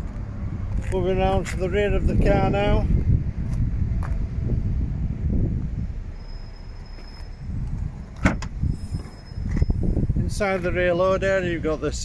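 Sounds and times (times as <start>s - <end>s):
tailgate latch clicks: 8.2s - 8.6s.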